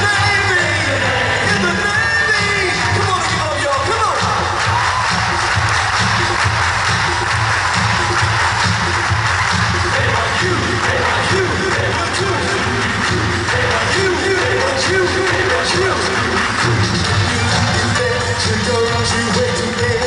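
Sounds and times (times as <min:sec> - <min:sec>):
loud live pop band music: 0:00.0 - 0:20.0.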